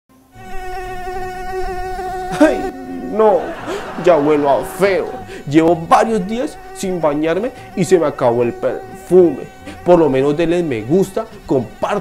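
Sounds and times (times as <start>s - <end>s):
flying insect buzzing: 0.1s - 12.0s.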